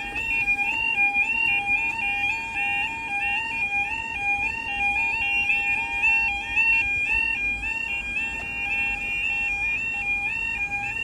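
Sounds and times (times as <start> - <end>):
two-tone warbling level crossing alarm: 0.0 - 11.0.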